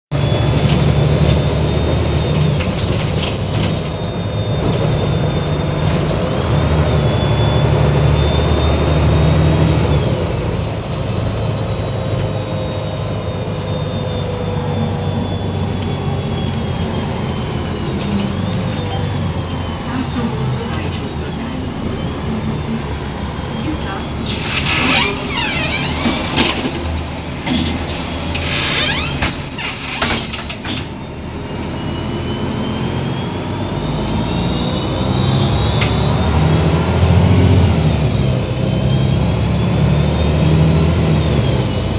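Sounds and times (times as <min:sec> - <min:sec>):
brake squeal: 0:00.1 - 0:41.9
bus engine running: 0:00.1 - 0:41.9.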